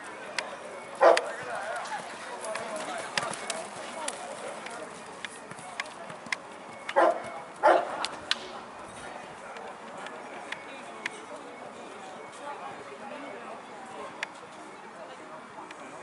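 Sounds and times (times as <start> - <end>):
faint background voices: 0.0 - 16.0
dog barking: 1.0 - 1.3, 7.0 - 7.9.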